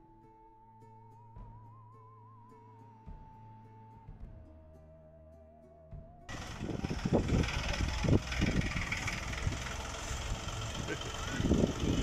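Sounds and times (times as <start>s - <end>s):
soft music: 0.0s - 6.3s
tractor engine running: 6.3s - 12.0s.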